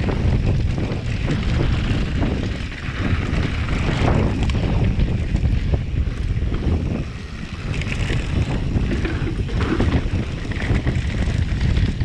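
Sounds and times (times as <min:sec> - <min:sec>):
bike knocks and rattles: 0:00.0 - 0:12.0
tyres rolling on dirt trail: 0:00.0 - 0:12.0
wind noise on microphone: 0:00.0 - 0:12.0.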